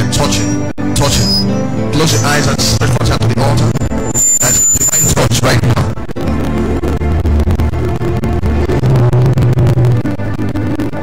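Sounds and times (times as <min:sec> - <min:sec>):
instrumental music with held bass: 0:00.0 - 0:11.0.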